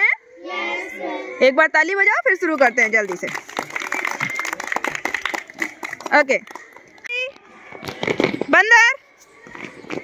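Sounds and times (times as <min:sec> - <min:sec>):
children clapping: 0:02.5 - 0:07.1.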